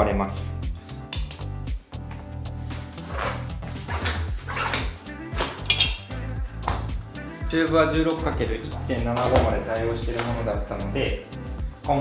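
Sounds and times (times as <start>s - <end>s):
background music: 0.0s - 12.0s
rubbery bicycle tyre squeaks: 2.9s - 6.2s.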